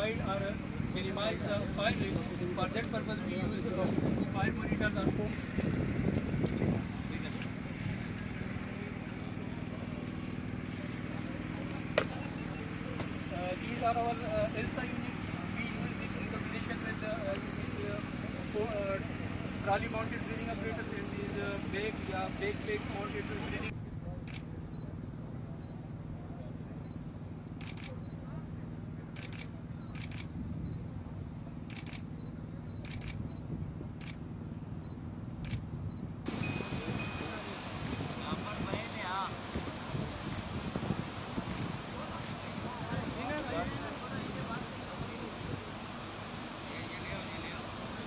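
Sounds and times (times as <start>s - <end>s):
small pump engine running: 0.0s - 24.4s
camera shutter clicks: 27.6s - 28.0s, 31.7s - 32.1s, 32.8s - 33.3s.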